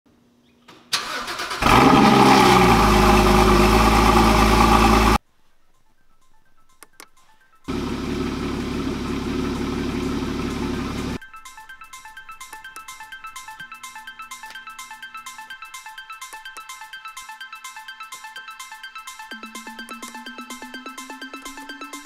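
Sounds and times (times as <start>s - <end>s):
engine starter cranking: 0.9s - 5.2s
car engine running: 1.6s - 5.2s, 7.7s - 11.2s
music: 5.2s - 7.7s, 9.4s - 22.0s
clicks: 6.7s - 7.4s.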